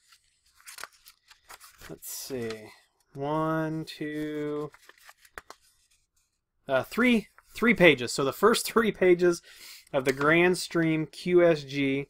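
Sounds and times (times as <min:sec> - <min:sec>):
paper pages turning: 0:00.0 - 0:03.1, 0:04.0 - 0:06.4, 0:10.0 - 0:10.6.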